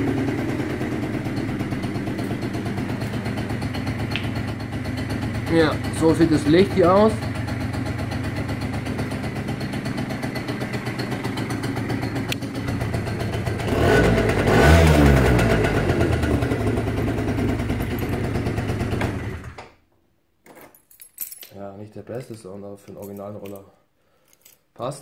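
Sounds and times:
scooter engine idling and revving: 0.0 - 19.6.

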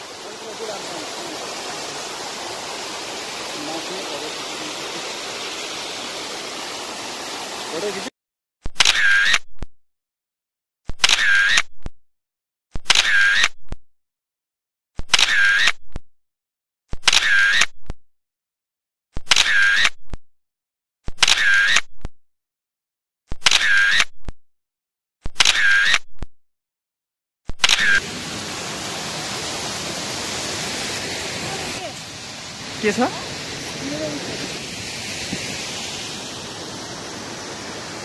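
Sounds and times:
waterfall rushing: 0.0 - 8.1, 28.0 - 38.0
camera shutter sound effect: 8.8 - 9.4, 11.0 - 11.7, 12.9 - 13.6, 15.1 - 15.8, 17.0 - 17.7, 19.3 - 20.0, 21.2 - 21.9, 23.4 - 24.1, 25.4 - 26.0, 27.6 - 28.0.

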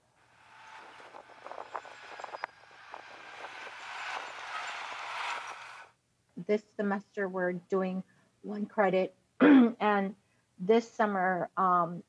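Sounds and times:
road traffic noise: 0.0 - 5.9.

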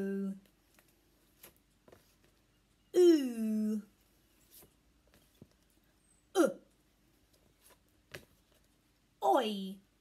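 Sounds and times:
woman saying oo sound: 0.0 - 0.4, 2.9 - 3.9.

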